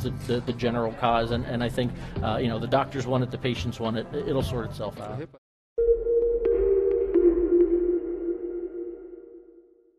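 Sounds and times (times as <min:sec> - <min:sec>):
low synth tone: 0:05.8 - 0:09.9.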